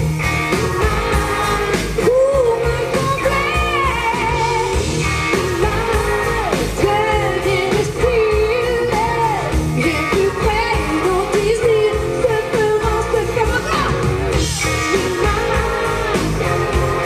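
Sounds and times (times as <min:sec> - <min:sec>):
pop-rock band playing: 0:00.0 - 0:17.0
woman singing: 0:00.6 - 0:13.9, 0:14.8 - 0:16.1.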